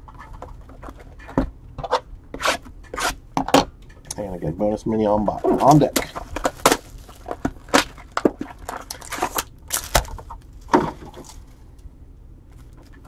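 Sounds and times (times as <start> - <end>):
foil packs crinkling: 5.6 - 11.6.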